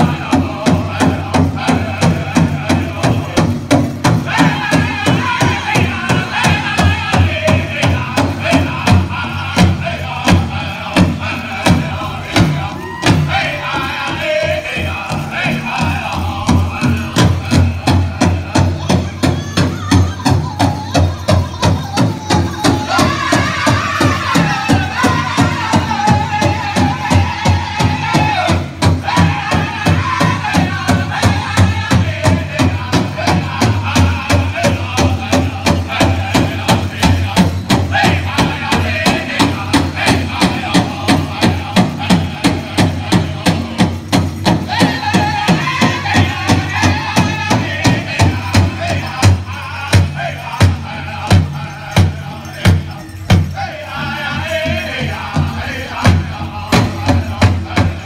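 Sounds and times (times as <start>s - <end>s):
big drum steady beat: 0.0s - 58.0s
high-pitched group singing: 0.0s - 58.0s.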